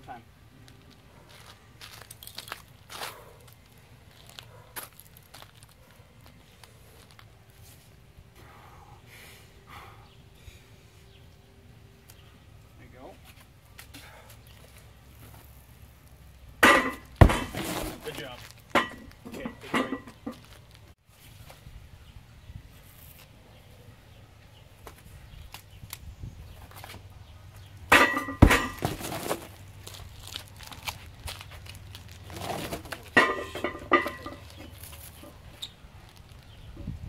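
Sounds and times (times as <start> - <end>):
stone thudding on wooden platform: 16.6 - 18.0, 27.9 - 29.4.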